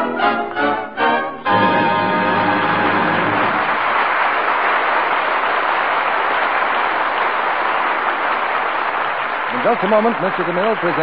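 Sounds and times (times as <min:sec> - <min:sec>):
orchestra closing chord: 0:00.0 - 0:03.7
studio audience applauding: 0:02.4 - 0:11.0.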